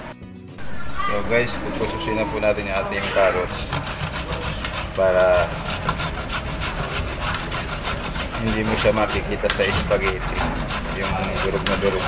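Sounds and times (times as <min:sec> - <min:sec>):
carrot grating on metal grater: 0:01.7 - 0:12.0.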